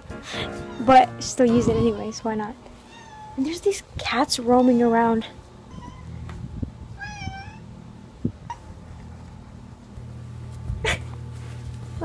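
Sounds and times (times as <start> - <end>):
steady low hum: 0.0 - 12.0
cat meowing: 2.8 - 3.4, 5.7 - 6.2, 7.0 - 7.7.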